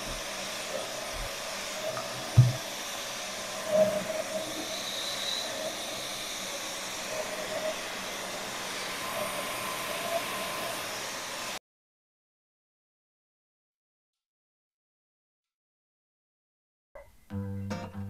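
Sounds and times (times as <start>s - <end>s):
vacuum cleaner running: 0.0s - 11.6s
small knock: 2.4s - 2.6s
thump: 2.4s - 2.6s.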